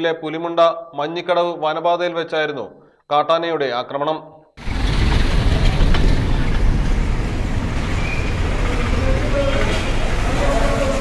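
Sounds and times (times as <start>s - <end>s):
vehicle engine rumbling: 4.6s - 11.0s
faint voices: 8.5s - 11.0s.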